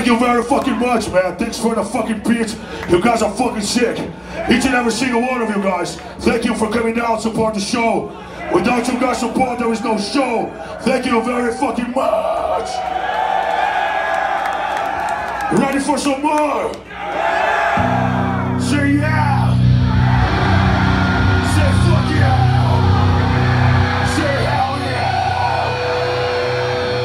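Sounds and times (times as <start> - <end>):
crowd cheering: 8.4 - 27.0
guitar amplifier feedback tone: 17.8 - 27.0
low amplifier hum: 17.8 - 27.0.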